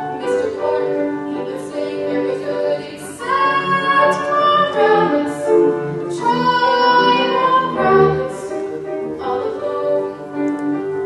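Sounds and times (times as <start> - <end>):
grand piano accompaniment: 0.0 - 11.0.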